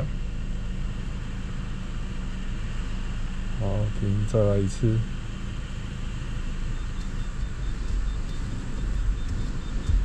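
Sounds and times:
car engine rumbling: 0.0s - 10.0s
faint high beeping: 6.7s - 10.0s.

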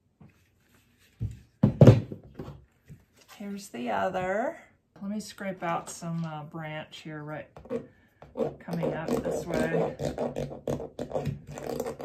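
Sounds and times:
tool scraping wet paint: 7.6s - 12.0s.

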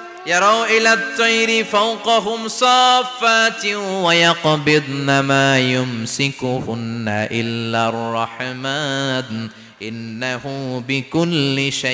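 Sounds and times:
man chanting melodically: 0.0s - 11.9s.

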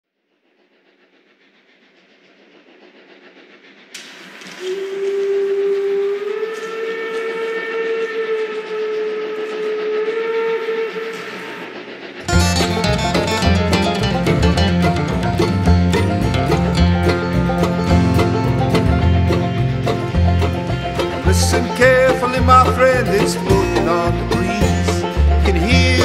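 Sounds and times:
rolling steam train: 0.1s - 26.0s
steam whistle: 4.0s - 26.0s
banjo-led country band: 12.3s - 26.0s.

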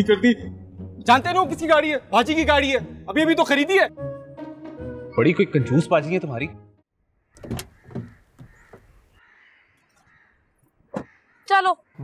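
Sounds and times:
car door shutting: 7.4s - 9.0s.

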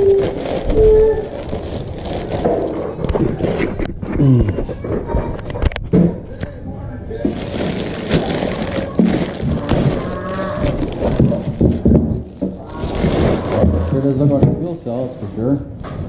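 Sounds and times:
plastic bag rustling: 0.0s - 3.9s, 7.2s - 16.0s.

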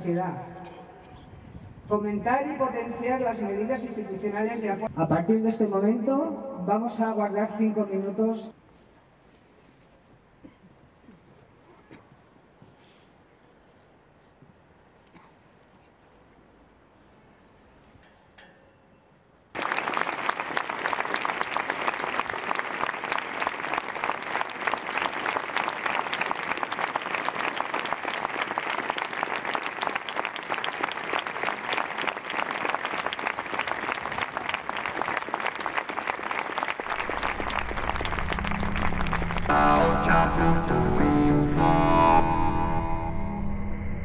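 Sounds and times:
crowd applauding: 19.5s - 41.0s
music: 38.0s - 43.6s.

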